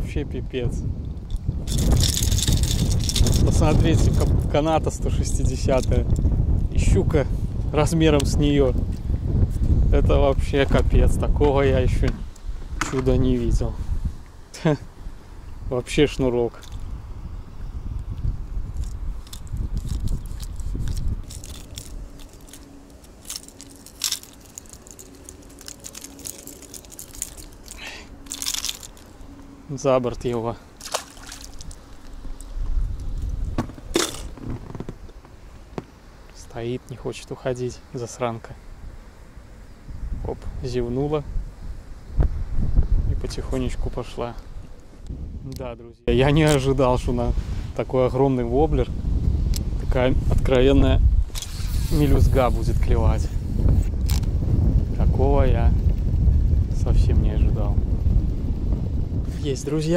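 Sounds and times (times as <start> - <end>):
wind rumble on microphone: 0.0 - 59.9
crunchy rustling of gloved hands: 1.2 - 4.6, 18.4 - 36.4
low rumble: 48.9 - 59.7.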